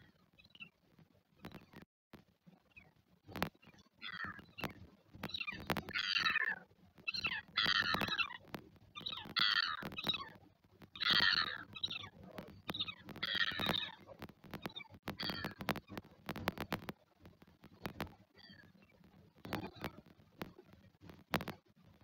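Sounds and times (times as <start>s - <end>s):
sharp clicks: 3.3s - 21.7s
bird chick squeaky begging calls: 5.3s - 8.3s, 11.0s - 14.0s.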